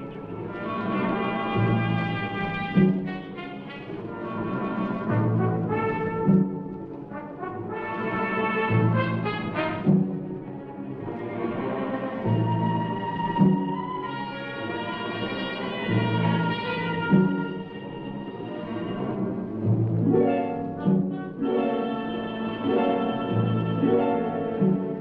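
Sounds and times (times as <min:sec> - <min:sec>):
brass long held notes: 0:00.0 - 0:10.5, 0:11.6 - 0:19.7, 0:20.8 - 0:25.0
orchestral film music: 0:00.0 - 0:25.0.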